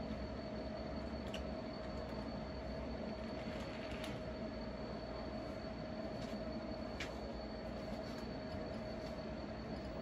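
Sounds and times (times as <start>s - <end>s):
steady hum: 0.0s - 10.0s.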